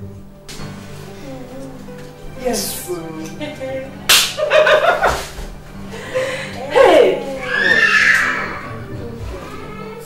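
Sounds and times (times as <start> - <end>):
hand slap: 4.1 - 5.4
women laughing: 4.4 - 7.6.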